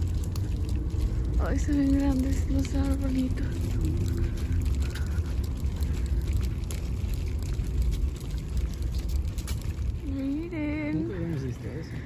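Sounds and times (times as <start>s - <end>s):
wind rumble: 0.0s - 12.0s.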